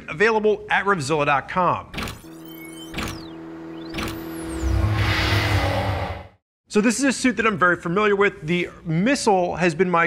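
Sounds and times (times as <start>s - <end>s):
held electronic tone: 2.0s - 6.4s
sharp electronic hits: 2.0s - 6.4s
whooshing sweeps: 3.7s - 6.4s
low rumble: 4.3s - 6.4s.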